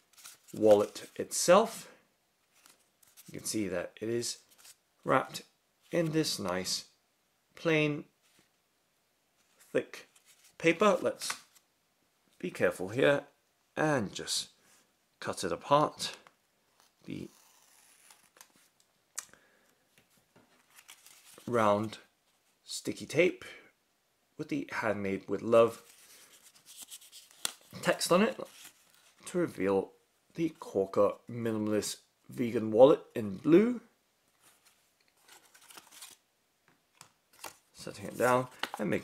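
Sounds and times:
paper wrapper rustling: 0.0 - 1.2, 20.6 - 21.6, 25.8 - 29.2, 34.4 - 36.2, 37.3 - 39.0.

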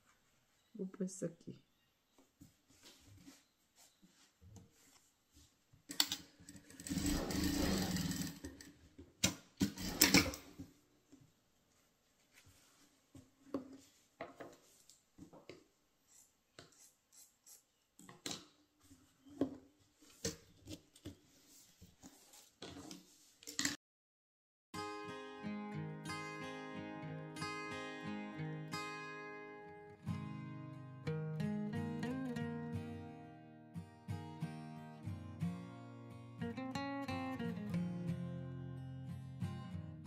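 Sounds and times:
sewing machine stitching: 6.4 - 8.8, 9.6 - 10.5
fabric rustling: 11.3 - 15.2.

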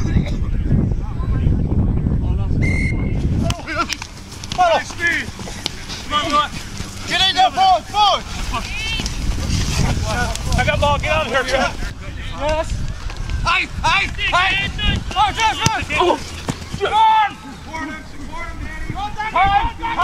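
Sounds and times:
wind buffeting microphone: 0.0 - 20.0
steady whistle blast: 2.6 - 3.2.

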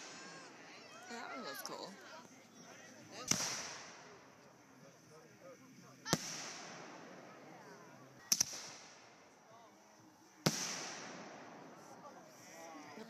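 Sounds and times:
fireworks bangs with echo: 3.2 - 4.3, 6.0 - 9.4, 10.4 - 12.4.

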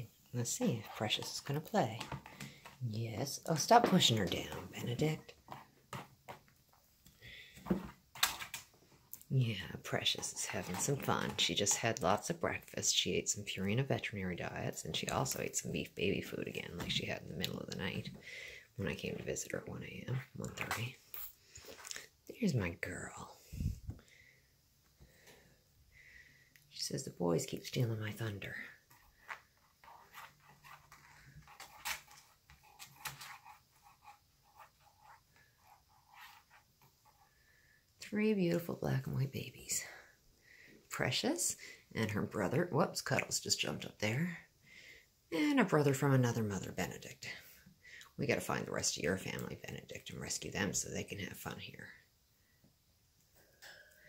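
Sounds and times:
kittens scuffling: 28.4 - 37.3.

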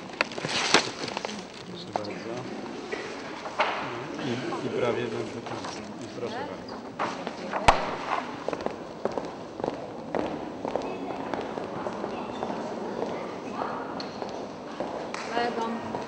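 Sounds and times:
murmur of a crowd: 0.0 - 16.0
footsteps on wooden floor: 6.8 - 13.2.

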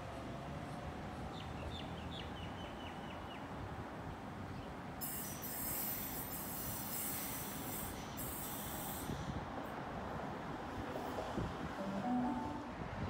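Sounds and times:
high-pitched train tones: 11.8 - 13.0.

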